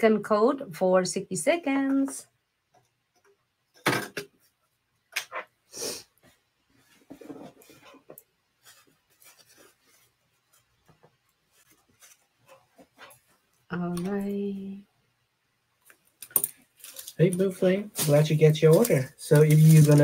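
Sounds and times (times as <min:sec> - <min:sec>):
rubbing and shuffling: 0:06.2 - 0:13.7, 0:17.9 - 0:20.0.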